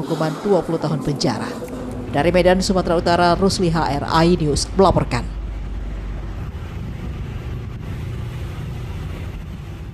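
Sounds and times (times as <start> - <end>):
low rumble: 0.0 - 9.9.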